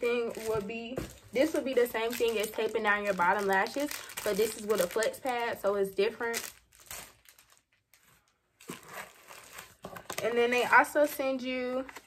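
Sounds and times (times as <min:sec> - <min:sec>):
packaging crinkling: 0:00.2 - 0:10.8.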